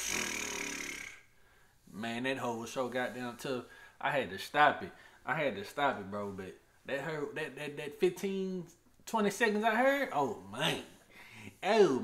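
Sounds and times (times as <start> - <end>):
man's raspy throat growl: 0.0 - 1.3.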